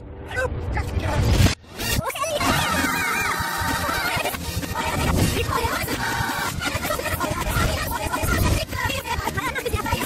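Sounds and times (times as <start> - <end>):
garbled high-pitched voice and music: 0.2 - 10.0.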